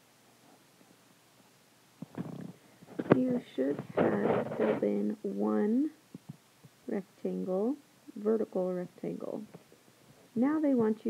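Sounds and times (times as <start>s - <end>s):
person speaking: 2.2s - 6.0s, 6.8s - 9.6s, 10.3s - 11.0s.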